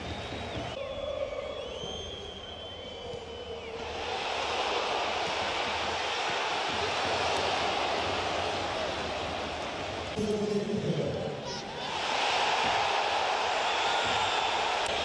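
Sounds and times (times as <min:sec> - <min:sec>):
high whistles: 0:00.0 - 0:05.0, 0:13.4 - 0:15.0
crowd roaring: 0:03.6 - 0:10.2, 0:11.5 - 0:15.0.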